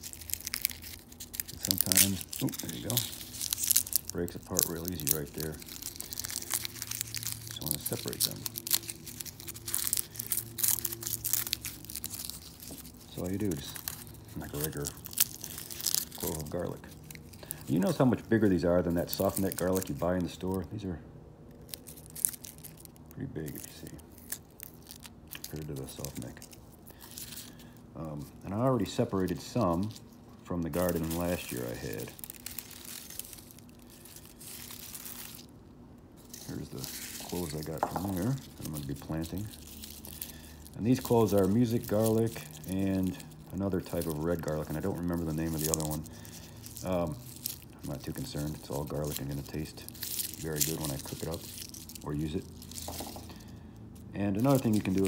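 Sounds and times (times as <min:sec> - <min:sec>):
faint crackles: 0:00.0 - 0:20.8, 0:21.5 - 0:35.6, 0:36.2 - 0:55.0
garlic skins crinkling and tearing: 0:00.0 - 0:20.9, 0:21.5 - 0:55.0
low steady hum: 0:00.0 - 0:55.0.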